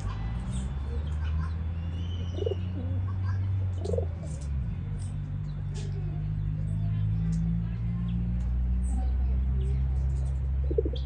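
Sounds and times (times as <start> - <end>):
high bird chirps: 1.6 - 2.8
pigeon cooing: 2.2 - 4.4, 10.6 - 11.0.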